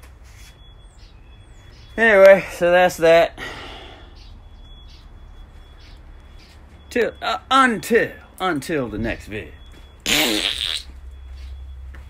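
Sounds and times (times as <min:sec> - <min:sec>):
man blowing raspberry: 0:10.0 - 0:10.9.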